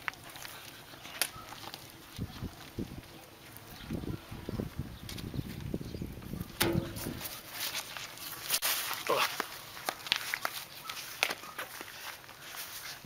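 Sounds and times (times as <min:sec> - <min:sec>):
bread and foil crackling: 0:00.0 - 0:13.0
movement noise: 0:00.0 - 0:13.0.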